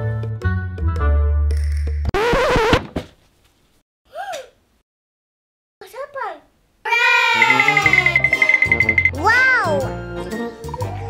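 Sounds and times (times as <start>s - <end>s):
girl's surprised ooh: 6.9s - 8.2s.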